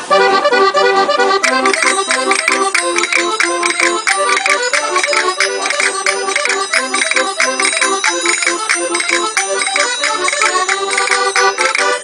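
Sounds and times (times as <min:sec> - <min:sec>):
concertina playing lively melody: 0:00.0 - 0:12.0.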